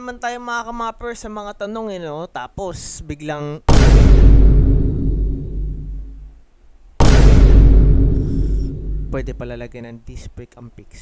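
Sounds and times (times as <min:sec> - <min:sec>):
deep loud boom: 0:03.7 - 0:06.4, 0:07.0 - 0:09.7.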